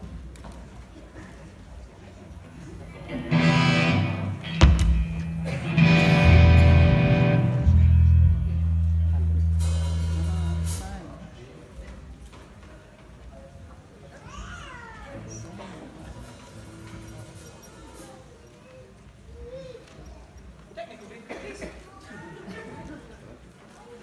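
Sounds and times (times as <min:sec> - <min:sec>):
electric bass guitar low notes: 0:03.1 - 0:11.0.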